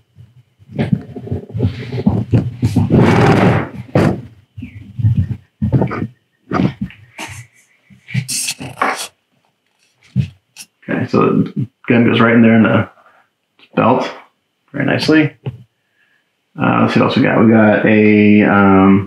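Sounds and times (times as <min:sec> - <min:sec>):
short scratchy sounds: 0:00.7 - 0:10.8.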